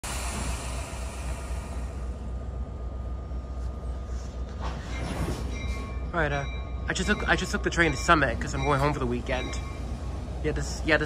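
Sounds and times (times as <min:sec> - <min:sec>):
train low hum: 0:00.0 - 0:11.0.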